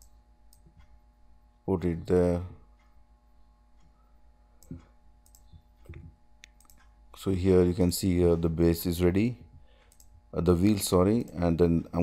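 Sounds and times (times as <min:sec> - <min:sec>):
low steady hum: 0:00.0 - 0:12.0
computer mouse clicks: 0:04.6 - 0:06.9, 0:09.8 - 0:10.2.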